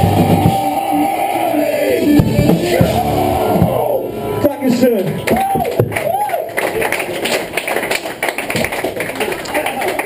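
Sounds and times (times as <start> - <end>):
audience clapping: 5.1 - 10.0.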